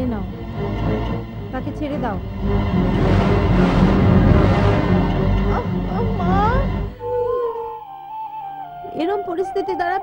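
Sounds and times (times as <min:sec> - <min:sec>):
dramatic film score: 0:00.0 - 0:09.0.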